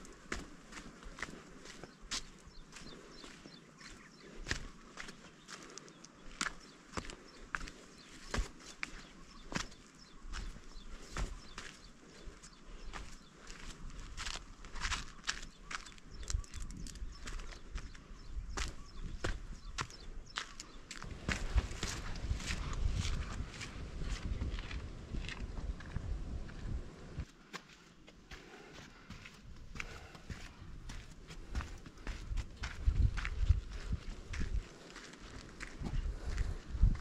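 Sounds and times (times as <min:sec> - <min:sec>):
footsteps on stone trail: 0:00.0 - 0:37.0.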